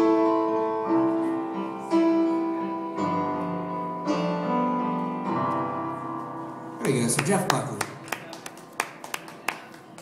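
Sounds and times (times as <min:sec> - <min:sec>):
piano song: 0:00.0 - 0:10.0
scattered handclaps: 0:06.9 - 0:10.0.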